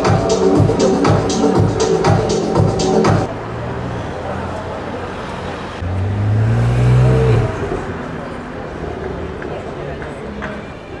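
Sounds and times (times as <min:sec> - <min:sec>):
street traffic noise: 0:00.0 - 0:11.0
car engine accelerating past: 0:05.3 - 0:08.6.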